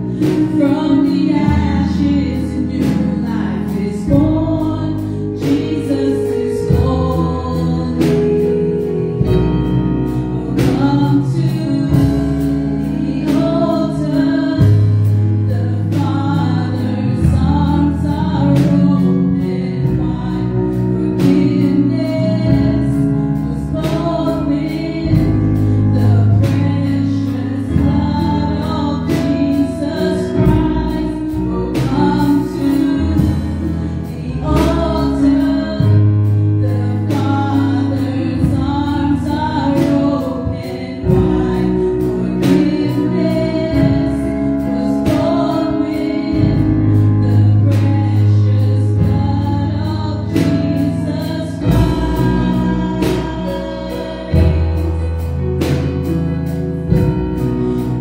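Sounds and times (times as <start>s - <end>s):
electronic keyboard chords: 0.0s - 58.0s
woman singing gospel: 0.0s - 58.0s.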